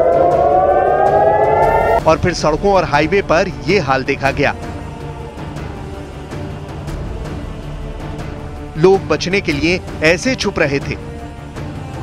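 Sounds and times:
air-raid siren wailing: 0.0 - 2.0.

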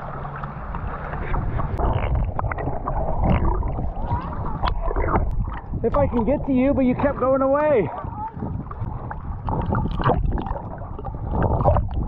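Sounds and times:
water sloshing and gurgling: 0.0 - 12.0.

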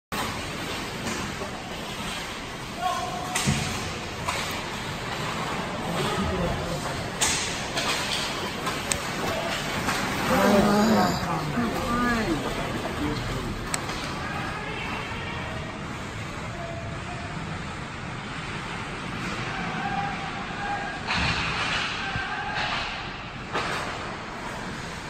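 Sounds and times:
rink background noise: 0.1 - 25.0
skates scraping on ice: 0.2 - 2.8, 3.7 - 15.0.

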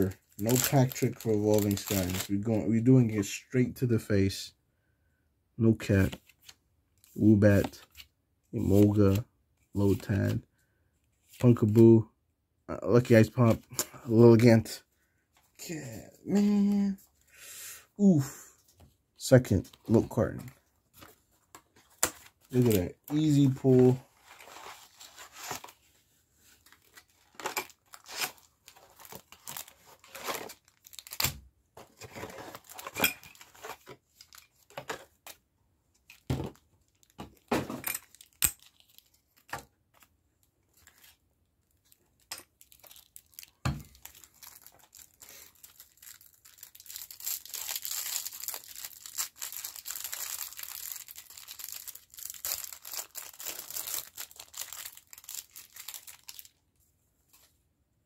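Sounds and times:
packaging crinkling and tearing: 0.0 - 2.5, 20.4 - 35.4, 36.1 - 40.1, 41.8 - 56.6
knocks and rustles of handled items: 31.2 - 35.3, 36.0 - 38.6.

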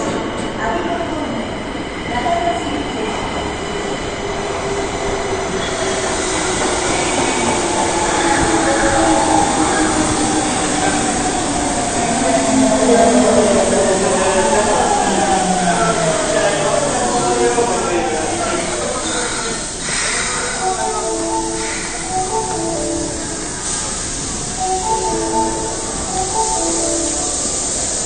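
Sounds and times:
train wheels running: 2.0 - 28.0
train brake whine: 4.4 - 28.0.

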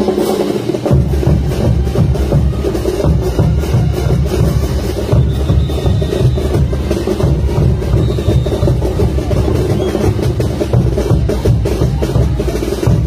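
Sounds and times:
folk dance band music: 0.0 - 13.0
bass drum beat: 0.8 - 13.0.

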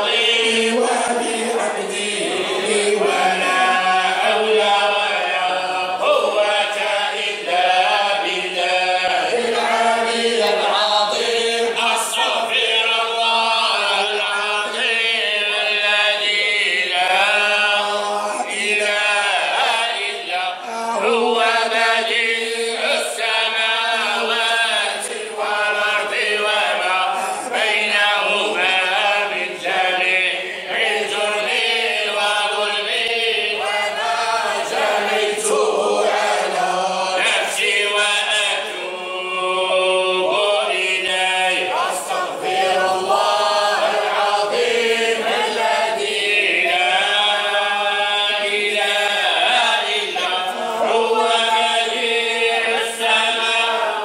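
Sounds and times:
men chanting unaccompanied: 0.0 - 54.0.

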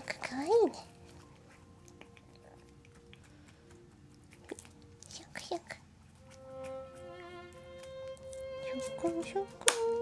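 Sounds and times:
faint background music: 0.0 - 10.0.

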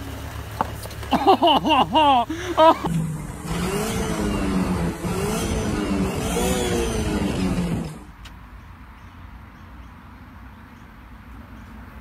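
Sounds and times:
car engine revving: 1.6 - 8.1.

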